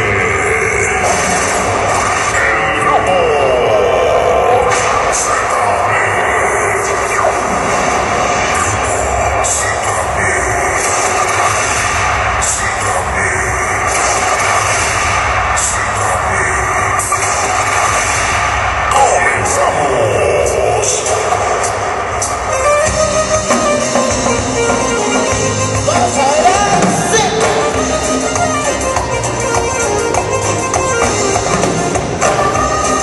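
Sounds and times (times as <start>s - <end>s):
live band music: 21.1s - 33.0s
person singing: 22.5s - 33.0s.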